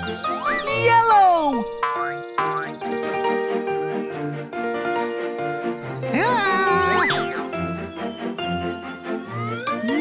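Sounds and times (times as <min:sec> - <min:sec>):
cartoon music: 0:00.0 - 0:02.8, 0:06.0 - 0:10.0
tone sliding down: 0:09.3 - 0:10.0.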